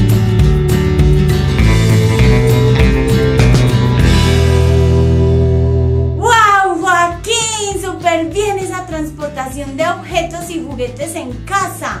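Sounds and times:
held music chord: 0:00.1 - 0:06.2.

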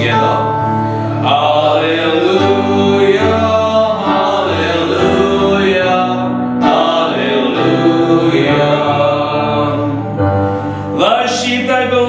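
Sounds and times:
church music: 0:00.0 - 0:12.0.

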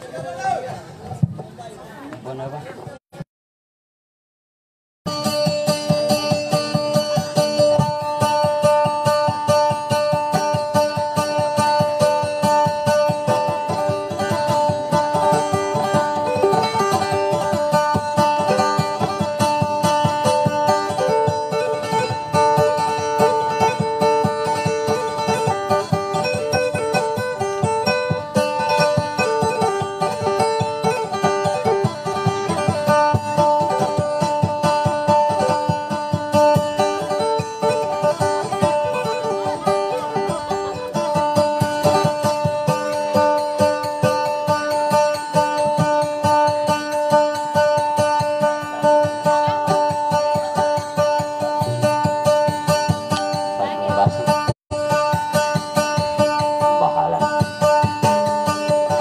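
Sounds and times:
plucked boat lute melody: 0:05.1 - 0:59.0.

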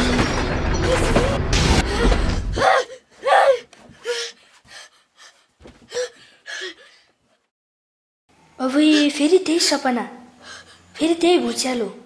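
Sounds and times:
child crying and sobbing: 0:00.8 - 0:04.4.

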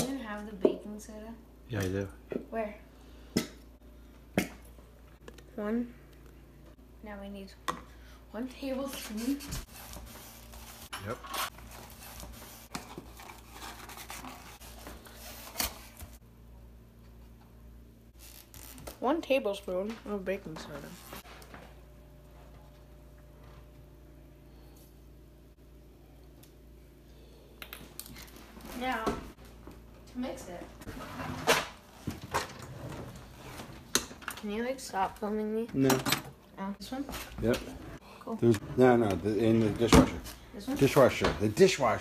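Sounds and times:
paper crinkling and scraping: 0:08.9 - 0:16.2.

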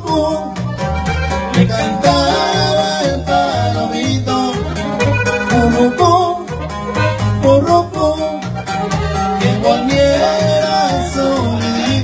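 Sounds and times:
accordion melody: 0:00.0 - 0:12.0
upright bass plucking: 0:00.0 - 0:12.0.

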